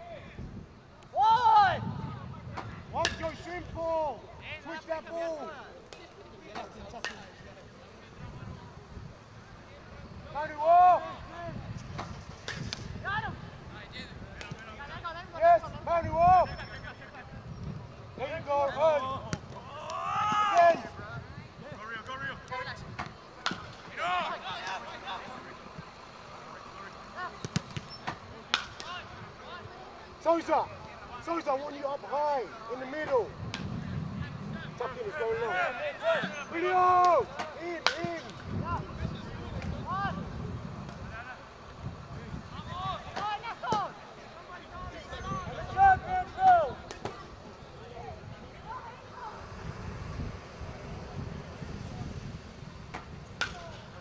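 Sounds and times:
players shouting calls: 0:00.0 - 0:51.2, 0:52.5 - 0:54.0.

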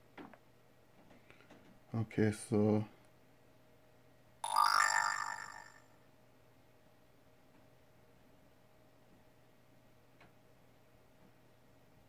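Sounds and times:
smartphone notification chime: 0:04.4 - 0:05.8.

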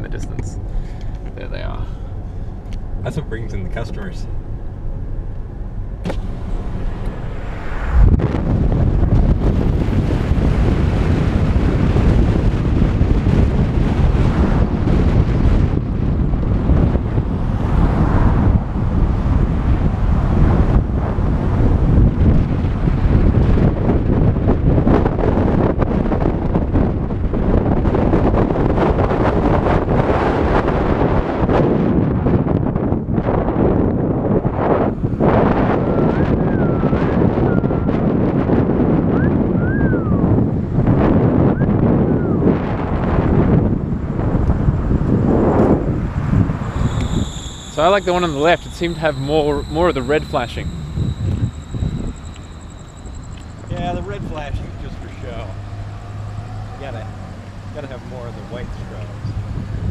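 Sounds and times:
car road noise: 0:00.0 - 0:59.9
wind buffeting microphone: 0:00.0 - 0:59.9.

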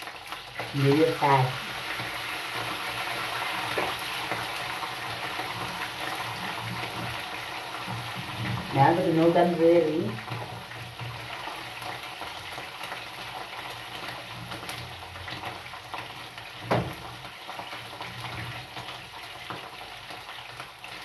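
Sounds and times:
meat sizzling in a frying pan: 0:00.0 - 0:21.0.

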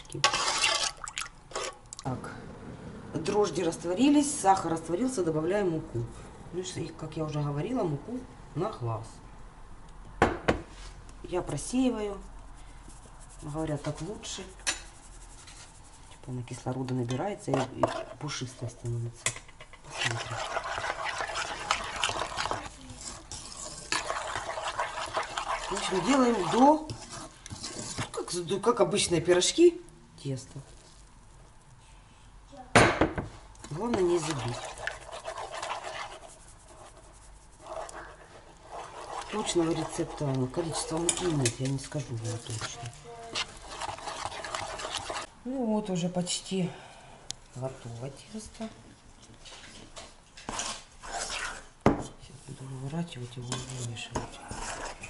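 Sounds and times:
spoon scraping wet dough: 0:00.0 - 0:02.1, 0:11.5 - 0:29.0, 0:33.6 - 0:45.4, 0:49.2 - 0:55.0.

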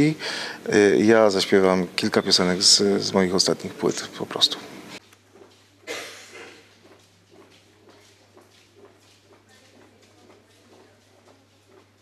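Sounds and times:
faint background voices: 0:06.3 - 0:12.0.

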